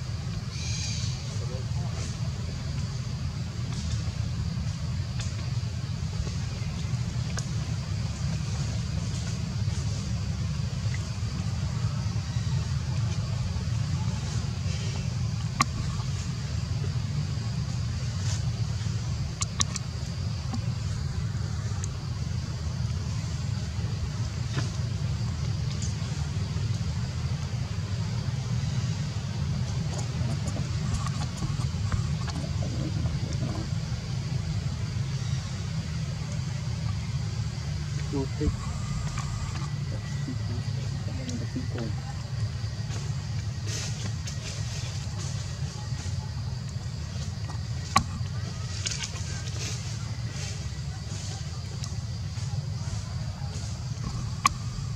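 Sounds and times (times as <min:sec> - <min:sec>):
low outdoor rumble: 0:00.0 - 0:54.9.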